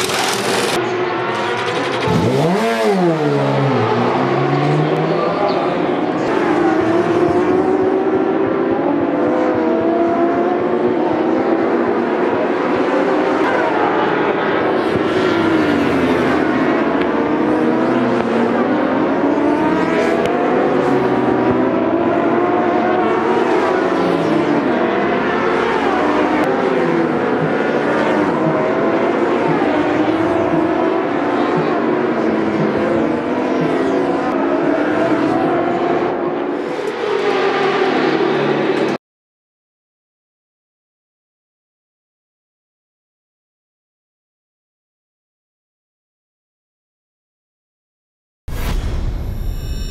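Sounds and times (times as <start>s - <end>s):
racing motorcycles revving past: 0.2s - 5.5s, 6.2s - 39.0s.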